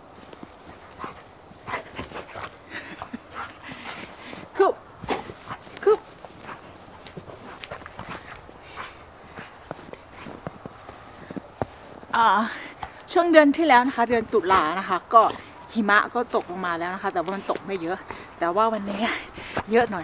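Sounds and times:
footsteps crunching in snow: 3.4s - 12.2s.

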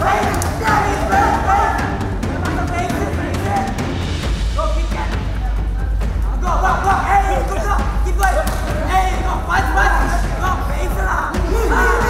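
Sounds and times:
voices calling out: 0.0s - 4.0s, 4.7s - 12.0s
loud music with heavy bass: 0.0s - 12.0s.

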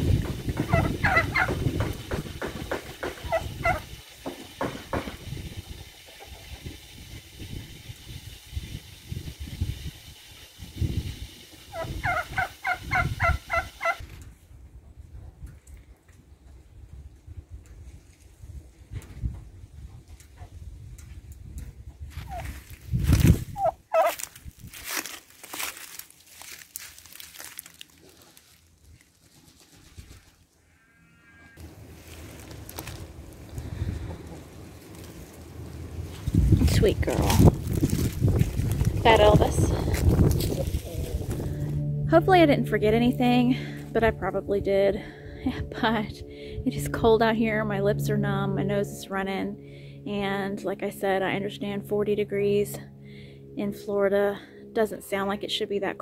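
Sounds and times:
turkey calling: 0.6s - 1.6s, 3.2s - 3.9s, 11.7s - 14.0s, 23.6s - 24.2s
low rumbling microphone noise: 31.6s - 54.6s.

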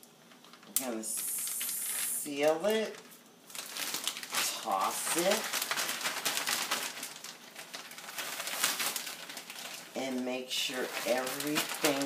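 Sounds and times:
plastic bag crinkling and rustling: 0.2s - 12.0s.

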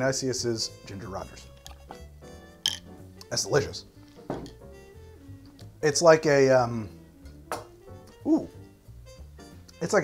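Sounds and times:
soft background music: 0.0s - 10.0s
man exclaiming: 8.2s - 8.6s.

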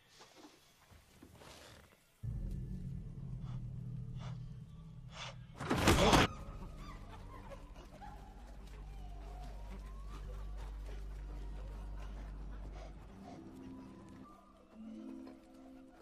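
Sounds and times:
low steady drone: 2.2s - 15.4s.

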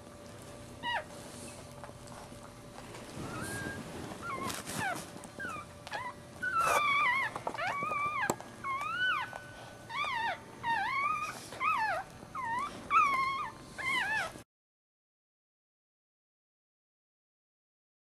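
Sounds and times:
puppy squealing: 3.2s - 14.4s.

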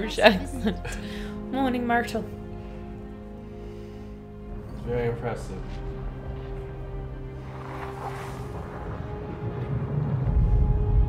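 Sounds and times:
ominous orchestral score: 0.0s - 11.0s
deep low rumble: 4.2s - 11.0s.

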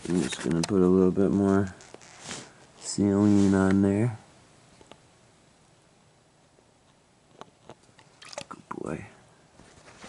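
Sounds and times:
man speaking: 0.0s - 1.8s, 2.8s - 4.3s, 8.4s - 9.3s
soft clicks and rustles: 0.0s - 3.9s, 6.5s - 8.5s, 9.6s - 10.0s.

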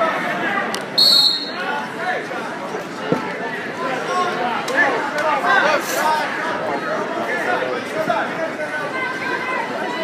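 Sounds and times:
crowd chatter: 0.0s - 10.0s
referee's whistle: 1.0s - 1.7s.

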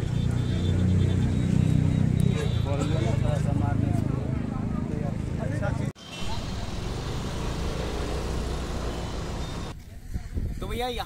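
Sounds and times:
road traffic rumble: 0.0s - 9.8s.

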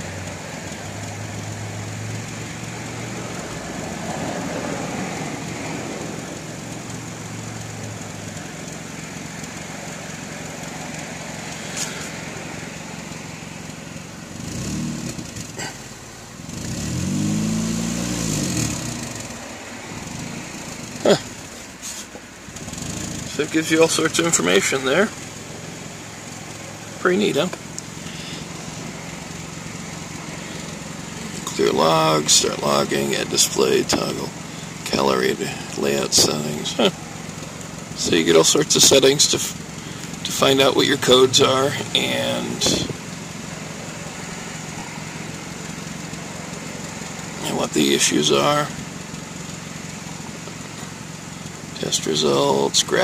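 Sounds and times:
car engine idling: 0.0s - 53.0s.

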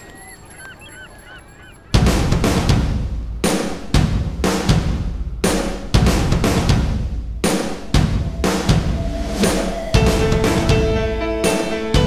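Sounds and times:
birds calling: 0.0s - 6.0s
loud drum-kit music: 2.0s - 12.0s.

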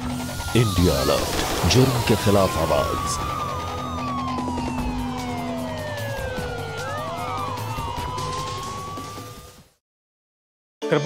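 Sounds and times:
crime show theme music: 0.0s - 9.8s
police siren wail: 0.0s - 9.8s.

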